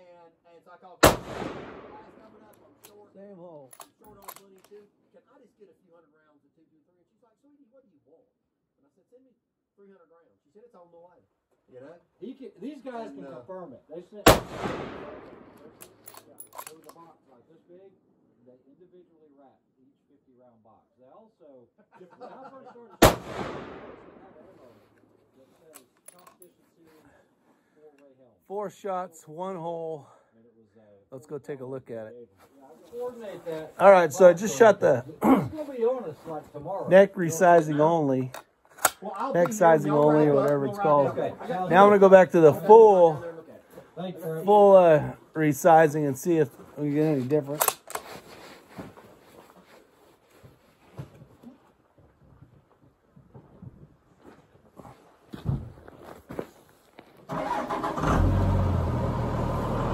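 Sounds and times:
rifle shot with echo: 0:01.0 - 0:02.5, 0:14.3 - 0:16.0, 0:23.0 - 0:24.5
clothing rustling: 0:48.0 - 0:51.0.

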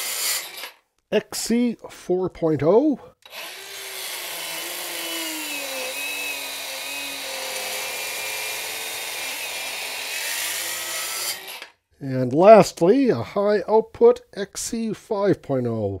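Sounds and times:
circular saw cutting wood: 0:00.0 - 0:00.8, 0:03.2 - 0:11.8.

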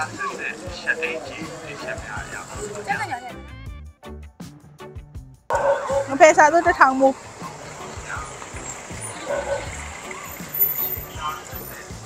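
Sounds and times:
traffic rumble: 0:00.0 - 0:03.2, 0:05.5 - 0:12.0
faint distant voices: 0:05.7 - 0:12.0.

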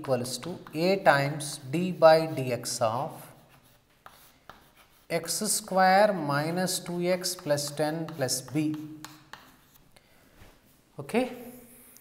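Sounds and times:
chalk scratching on a chalkboard: 0:00.0 - 0:09.9
chalk tapping on a board: 0:03.4 - 0:05.1, 0:06.7 - 0:09.8.

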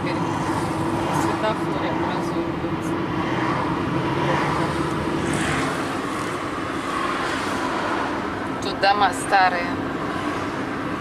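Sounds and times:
car engine and tyre rumble: 0:00.0 - 0:11.0
traffic outside: 0:00.0 - 0:11.0.

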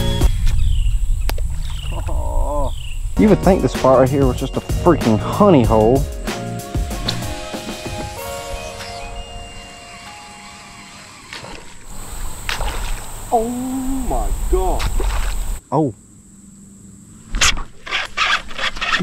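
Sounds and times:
microphone noise: 0:00.0 - 0:03.2, 0:12.0 - 0:15.6
fish splashing water: 0:11.8 - 0:13.4, 0:14.8 - 0:15.6.

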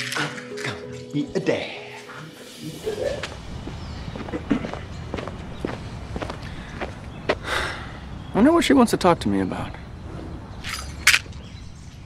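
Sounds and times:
footsteps on concrete: 0:03.2 - 0:07.6.

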